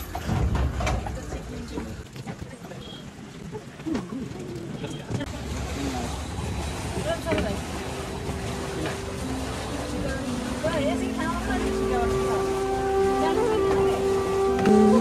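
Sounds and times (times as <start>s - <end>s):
people talking: 7.0s - 7.6s, 9.8s - 15.0s
music of held notes: 8.2s - 15.0s.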